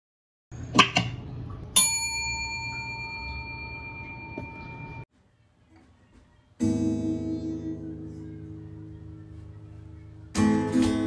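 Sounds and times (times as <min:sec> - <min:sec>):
notification bell ding: 0:01.8 - 0:05.0.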